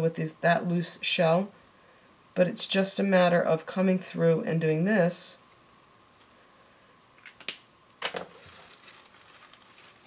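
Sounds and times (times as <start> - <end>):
paper napkin rustling: 8.2 - 10.0.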